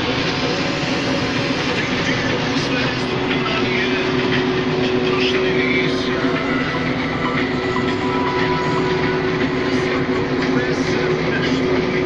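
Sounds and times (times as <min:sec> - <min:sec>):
combine harvester rattle and drone: 0:00.0 - 0:12.0
steady whine: 0:00.0 - 0:12.0.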